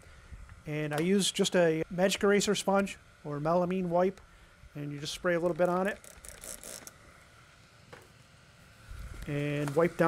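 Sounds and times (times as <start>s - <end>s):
spray bottle hissing: 6.0s - 7.0s.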